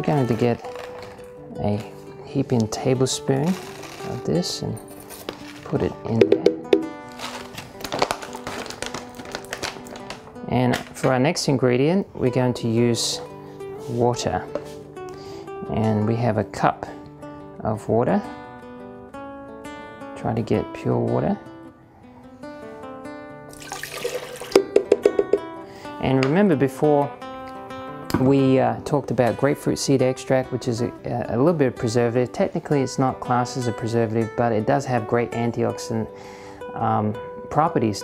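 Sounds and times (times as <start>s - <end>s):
plucked acoustic guitar music: 0.0s - 11.2s, 22.8s - 32.1s
sharp knocks or splashes: 6.2s - 7.0s, 24.0s - 25.5s
water pouring into blender jar: 23.6s - 24.6s.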